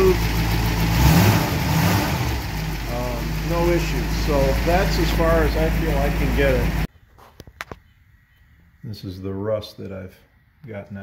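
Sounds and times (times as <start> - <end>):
man speaking: 2.8 - 6.9, 8.8 - 11.0.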